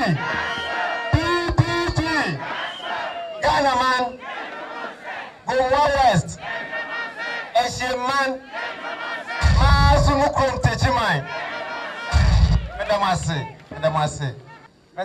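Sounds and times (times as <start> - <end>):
man shouting through loudspeakers: 0.0 - 4.2, 5.4 - 6.4, 7.5 - 8.5, 9.3 - 14.7
crowd shouting back: 0.0 - 14.7
heavy boom from loudspeakers: 9.4 - 10.3, 12.1 - 12.9.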